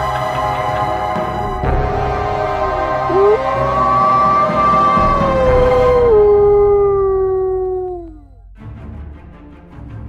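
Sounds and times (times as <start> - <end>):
dog howling: 3.0 - 8.4.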